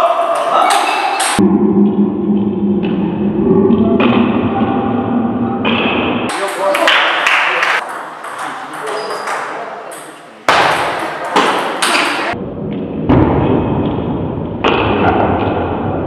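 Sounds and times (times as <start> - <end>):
voices in a hall: 3.5 - 12.4
ping pong ball hitting bats and table: 5.6 - 14.0.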